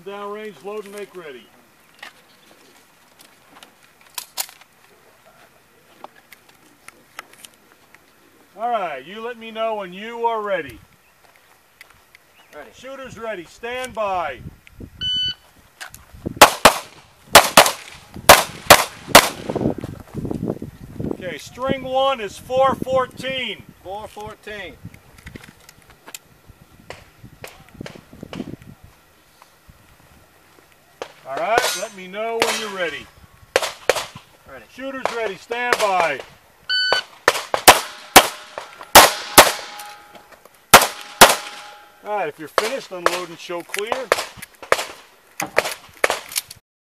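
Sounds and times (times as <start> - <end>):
pistol metallic clicks: 37.6 - 40.2.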